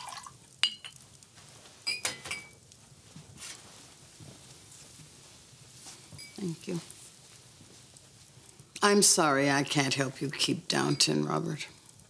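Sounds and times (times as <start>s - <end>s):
glass clinking: 0.0s - 1.0s, 1.8s - 2.6s, 6.2s - 6.5s.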